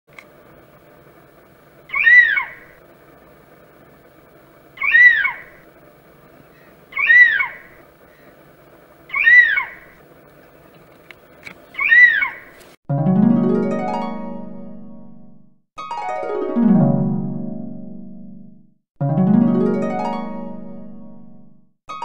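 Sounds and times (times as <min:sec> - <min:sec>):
steady low background noise: 0:00.1 - 0:12.7
animal call rising and falling: 0:01.8 - 0:02.8, 0:04.7 - 0:05.7, 0:06.5 - 0:08.3, 0:09.0 - 0:10.0, 0:11.7 - 0:12.6.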